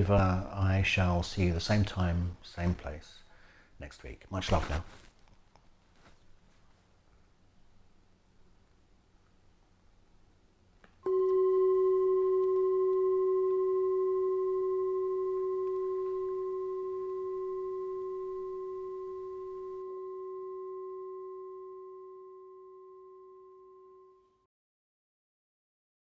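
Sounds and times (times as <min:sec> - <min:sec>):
singing bowl ringing: 0:11.0 - 0:24.5.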